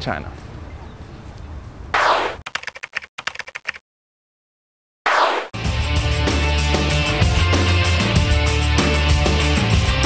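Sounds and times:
faint outdoor background noise: 0.0s - 2.0s
typewriter key clicks: 2.5s - 3.8s.

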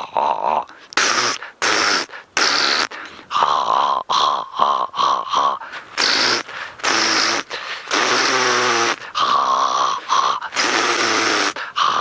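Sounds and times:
man imitating animal snorts and roars: 0.0s - 12.0s.

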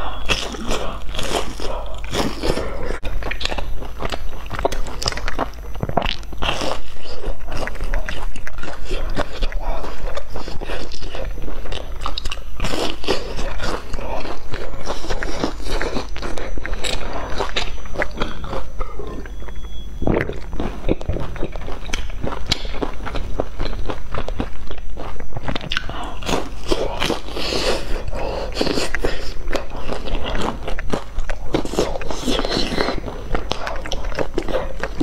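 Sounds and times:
person crunching and chewing food: 0.0s - 35.0s.

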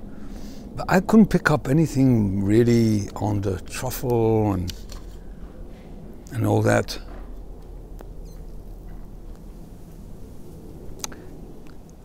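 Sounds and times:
low background rumble: 0.0s - 12.0s
light ticks: 11.0s - 11.9s.

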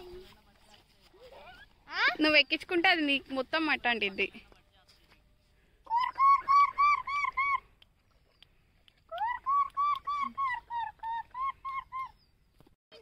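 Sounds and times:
bird calling rapid clear notes: 5.9s - 7.7s, 9.1s - 12.4s.

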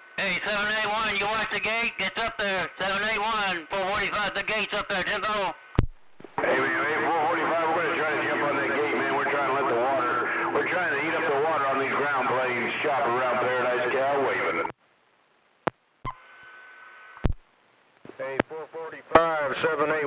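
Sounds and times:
radio hum and tone: 0.0s - 14.8s, 15.6s - 20.0s
voice over cb radio: 0.2s - 5.7s, 6.4s - 14.7s, 18.1s - 20.0s
sharp radio clicks: 5.7s - 6.4s, 15.6s - 18.6s.

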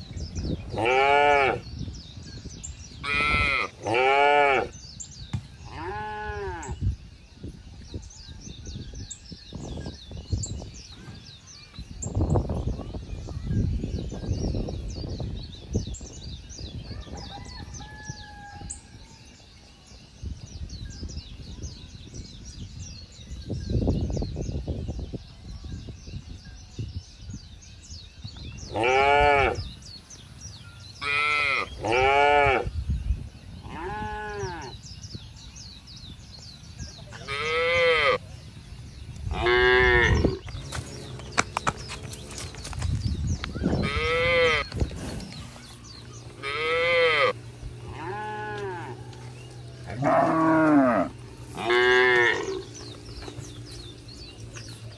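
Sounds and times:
cattle mooing: 46.4s - 49.2s, 49.9s - 52.7s.

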